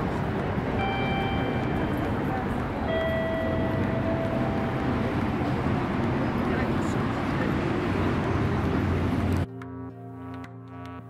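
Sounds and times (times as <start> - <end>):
people's voices: 0.0 - 9.4
traffic noise: 0.0 - 11.0
electronic music with synth and beat: 9.4 - 11.0.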